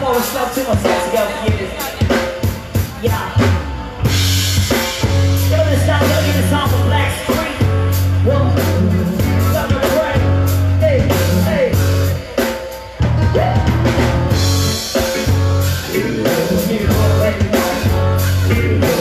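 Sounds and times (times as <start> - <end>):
live rock band playing: 0.0 - 19.0
man singing lead vocals: 0.0 - 19.0.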